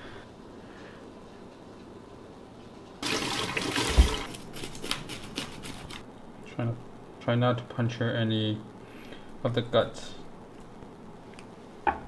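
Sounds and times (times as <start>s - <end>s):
water splashing: 3.0s - 4.4s.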